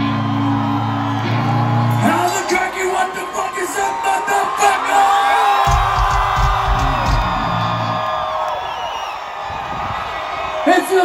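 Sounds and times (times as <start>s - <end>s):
rock band playing: 0.0s - 2.6s, 5.6s - 8.2s
crowd whooping and cheering: 0.0s - 11.0s.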